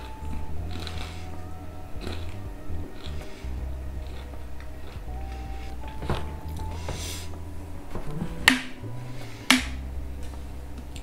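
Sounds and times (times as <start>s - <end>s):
tv soundtrack: 0.0s - 11.0s.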